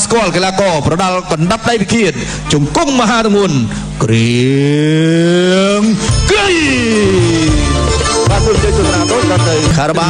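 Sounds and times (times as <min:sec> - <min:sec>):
long low rising call: 0:05.0 - 0:08.6.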